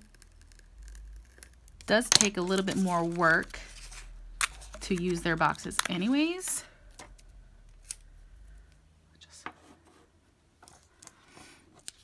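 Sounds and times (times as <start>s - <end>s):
craft knife and sticker sheets handled: 0.1s - 8.0s.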